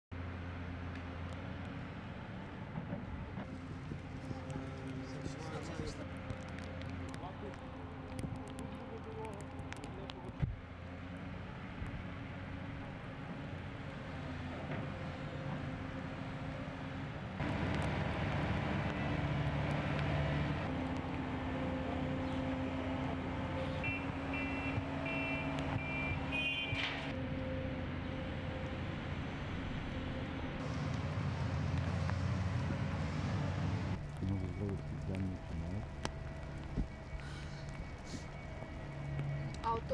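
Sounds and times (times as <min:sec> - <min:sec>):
heavy machinery diesel engines: 0:10.1 - 0:39.9
reversing alarm beeping: 0:23.8 - 0:26.8.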